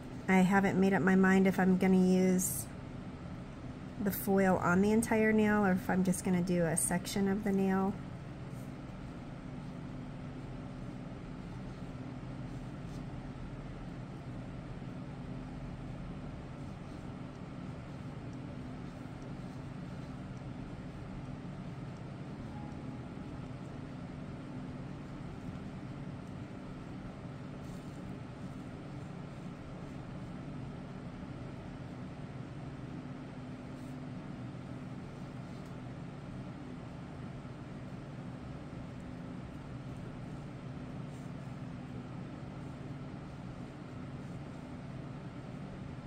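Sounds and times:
low hum: 0:00.0 - 0:46.0.

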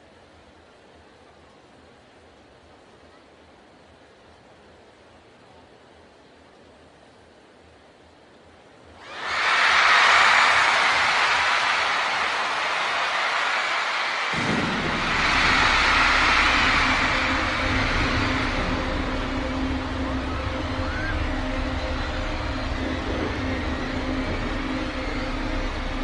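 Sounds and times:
arena crowd screaming and cheering: 0:09.0 - 0:26.0
deep low drone: 0:14.4 - 0:26.0.

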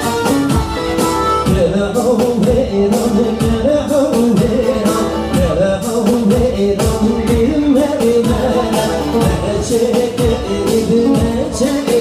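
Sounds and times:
amplified live music with beat: 0:00.0 - 0:12.0
person singing: 0:01.4 - 0:12.0.

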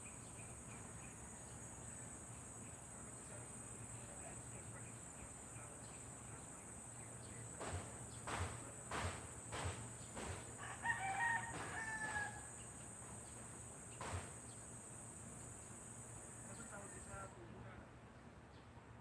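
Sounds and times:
sharp knocks: 0:07.6 - 0:10.5, 0:14.0 - 0:14.4
rooster crowing: 0:10.5 - 0:12.6.

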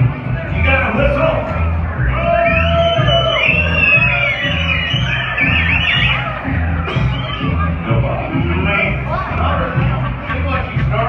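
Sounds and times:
guitar: 0:00.0 - 0:11.0
high sliding melody: 0:00.0 - 0:11.0
upright bass plucking: 0:00.0 - 0:11.0.

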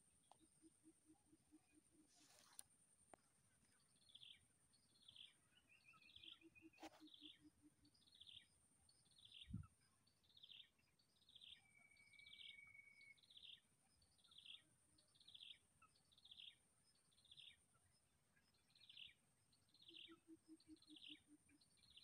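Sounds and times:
faint bird chirps: 0:00.0 - 0:22.0.

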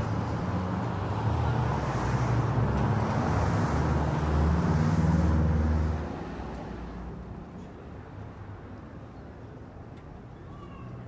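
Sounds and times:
vehicle engines humming: 0:00.0 - 0:11.0.

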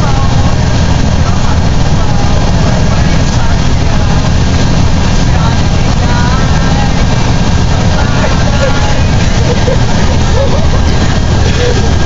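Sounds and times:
bus engine and road rumble: 0:00.0 - 0:12.0.

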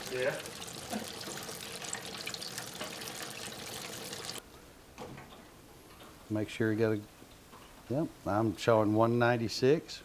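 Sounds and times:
hot oil bubbling and crackling: 0:00.0 - 0:04.4.

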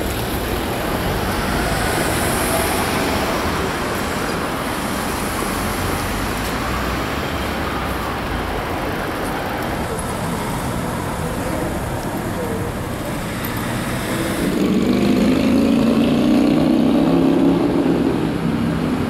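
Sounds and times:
traffic rumble: 0:00.0 - 0:19.0.

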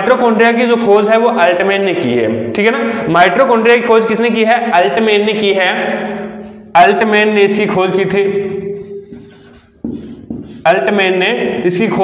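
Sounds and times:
man speaking: 0:00.0 - 0:08.8, 0:10.6 - 0:12.0.

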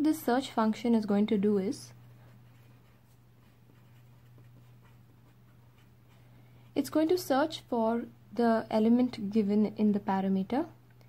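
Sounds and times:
low steady hum: 0:00.0 - 0:11.0
felt-tip pen scratching paper: 0:02.2 - 0:06.2.

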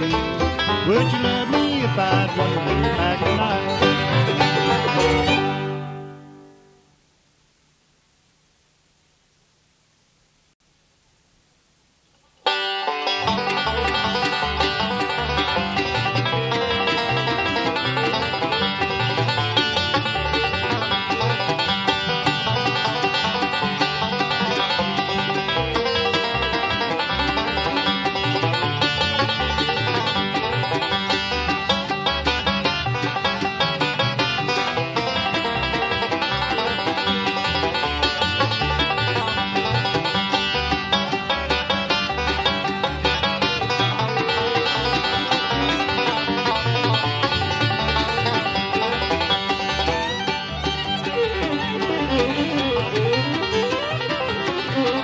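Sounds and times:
banjo picking lead: 0:00.0 - 0:06.8, 0:12.3 - 0:55.0
bluegrass band instrumental: 0:00.0 - 0:06.8, 0:12.3 - 0:55.0.

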